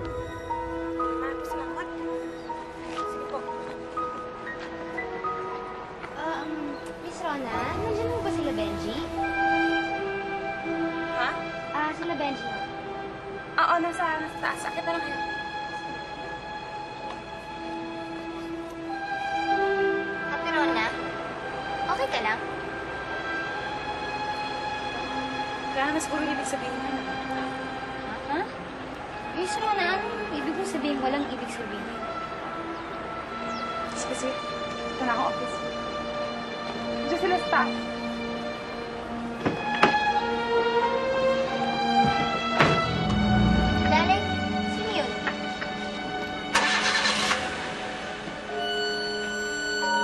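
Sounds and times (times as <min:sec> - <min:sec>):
synthesizer pad drone: 0:00.0 - 0:03.4, 0:05.3 - 0:11.8, 0:41.0 - 0:50.0
background music: 0:00.0 - 0:50.0
car engine cranking and starting: 0:45.3 - 0:48.3.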